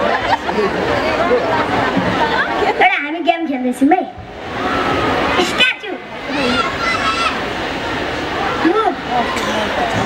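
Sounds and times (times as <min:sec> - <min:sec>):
steady rushing noise: 0:00.0 - 0:10.0.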